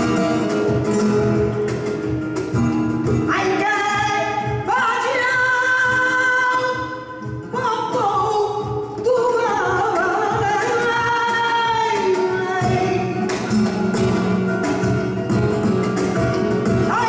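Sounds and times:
flamenco guitar: 0:00.0 - 0:17.0
flamenco singing: 0:00.0 - 0:17.0.

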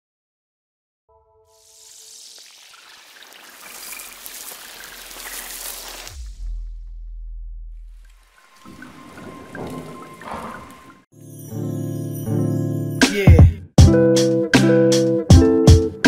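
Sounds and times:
deep bass boom: 0:06.1 - 0:08.1.

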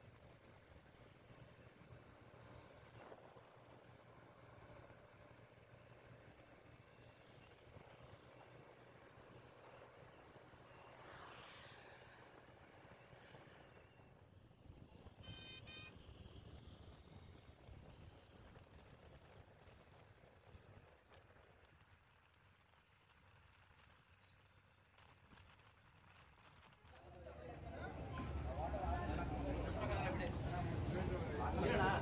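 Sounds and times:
road and wind noise: 0:00.0 - 0:32.0
pulsing horn beep: 0:15.2 - 0:16.0.

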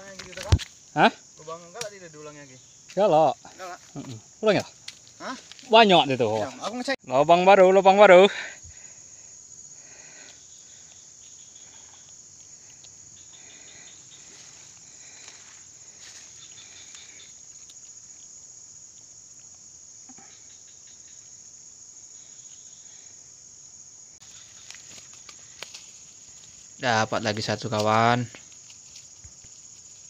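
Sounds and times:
insect chorus: 0:00.0 - 0:30.0
faint chirps: 0:08.5 - 0:23.4.

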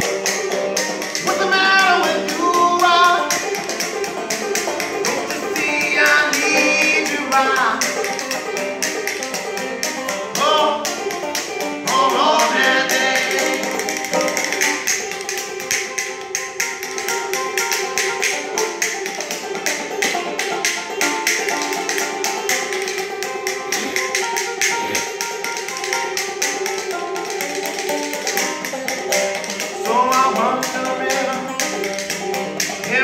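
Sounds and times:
banjo plucking: 0:00.0 - 0:33.0.

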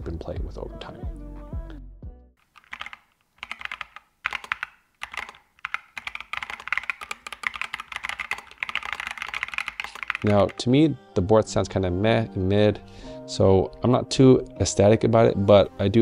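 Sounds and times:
typing on mechanical keyboard: 0:02.4 - 0:10.6.

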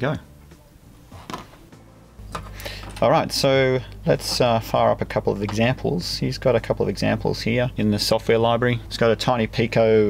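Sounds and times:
low hum: 0:00.2 - 0:10.0.

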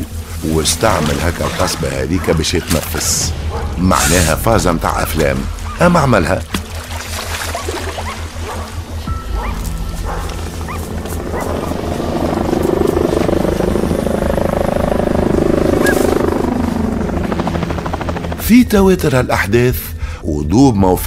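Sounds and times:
background music: 0:00.0 - 0:21.0
helicopter rotor chop: 0:10.0 - 0:19.4.

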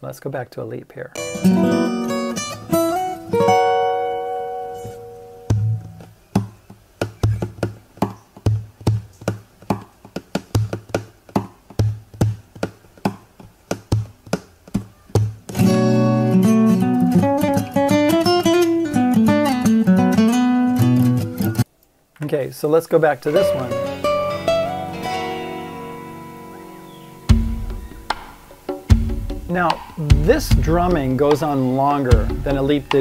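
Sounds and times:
acoustic guitar chord ringing: 0:01.2 - 0:06.0, 0:15.6 - 0:21.6, 0:23.3 - 0:31.0
guitar lead line with bent notes: 0:01.2 - 0:06.1, 0:15.5 - 0:21.6, 0:23.3 - 0:33.0
percussive slaps on guitar body: 0:05.5 - 0:15.7, 0:27.3 - 0:31.5.

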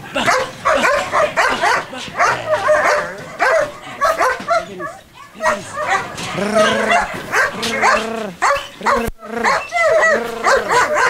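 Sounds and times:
dog barking and yelping: 0:00.2 - 0:11.0.

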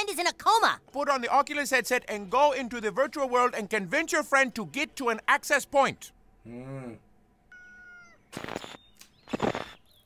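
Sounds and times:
high cat-like call: 0:07.5 - 0:08.3.

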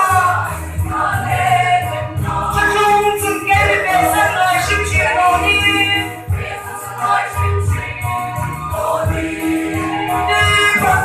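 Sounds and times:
mixed choir singing a hymn: 0:00.0 - 0:11.0.

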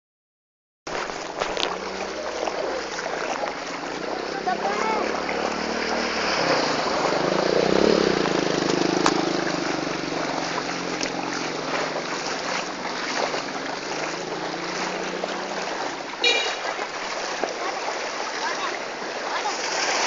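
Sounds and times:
water sloshing and splashing: 0:00.9 - 0:20.0
motorcycle engine running: 0:01.4 - 0:17.2.

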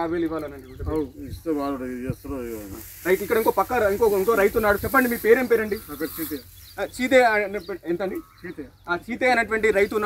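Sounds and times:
faint high hiss: 0:01.1 - 0:08.3.

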